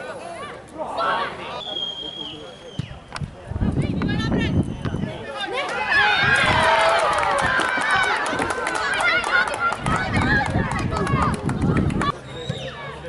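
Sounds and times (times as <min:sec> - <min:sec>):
crowd shouting excitedly: 0:05.5 - 0:11.4.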